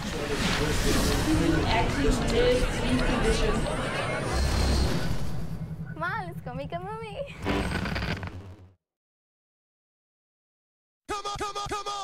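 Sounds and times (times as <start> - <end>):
voices speaking: 5.9 - 7.4.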